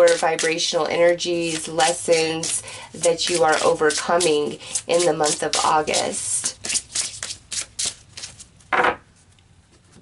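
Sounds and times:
card deck shuffling: 0:01.3 - 0:09.3.

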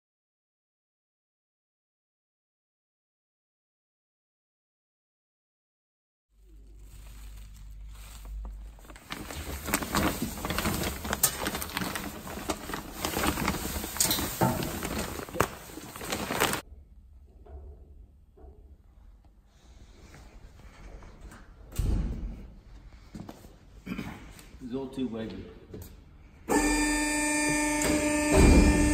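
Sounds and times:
sack and wood shavings crinkling: 0:06.4 - 0:16.6
thump: 0:21.8 - 0:22.4, 0:28.3 - 0:28.9.

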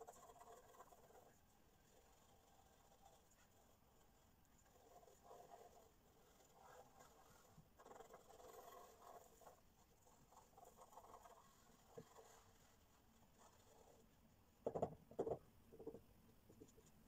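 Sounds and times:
pencil scratching on paper: 0:00.0 - 0:14.1.

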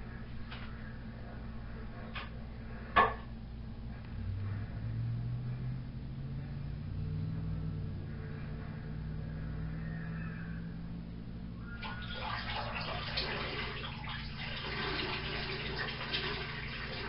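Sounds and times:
low steady hum: 0:00.0 - 0:17.0
urine stream splashing in toilet: 0:11.8 - 0:17.0.

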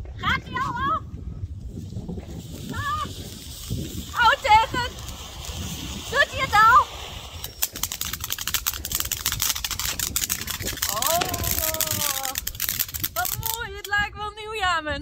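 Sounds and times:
firework crackling and hissing: 0:01.4 - 0:14.1.

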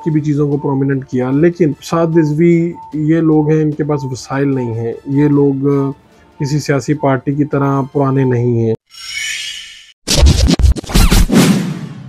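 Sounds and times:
record scratch hits: 0:10.1 - 0:11.8.

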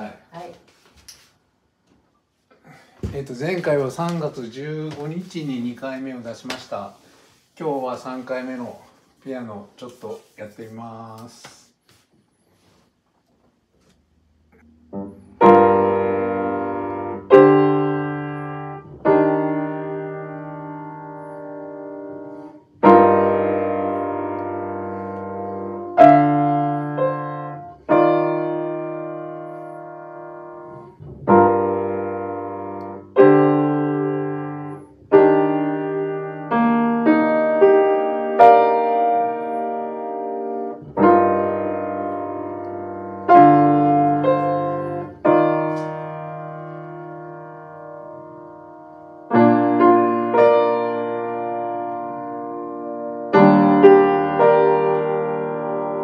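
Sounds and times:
piano chords: 0:14.5 - 0:56.0.

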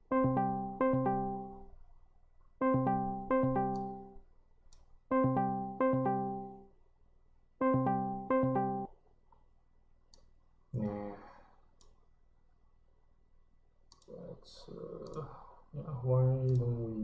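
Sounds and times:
faint clicks: 0:13.9 - 0:14.2
man speaking: 0:14.1 - 0:17.0.

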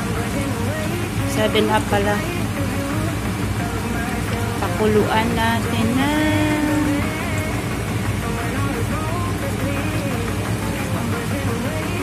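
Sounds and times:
background song: 0:00.0 - 0:12.0.

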